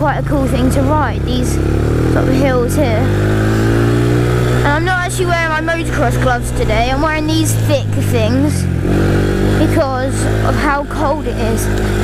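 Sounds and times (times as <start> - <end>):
quad bike engine running: 0.0 - 12.0.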